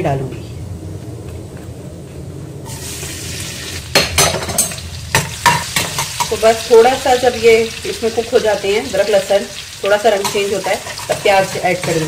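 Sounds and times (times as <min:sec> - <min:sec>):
food sizzling in hot oil: 0:02.6 - 0:12.0
ladle scraping a pan: 0:10.3 - 0:12.0.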